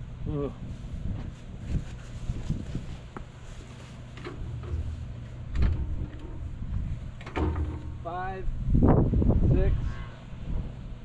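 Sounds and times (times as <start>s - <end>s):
wind rumble on microphone: 0.0s - 3.4s, 4.2s - 11.0s
dull knocks: 4.3s - 8.1s
brief rattle: 7.2s - 8.2s.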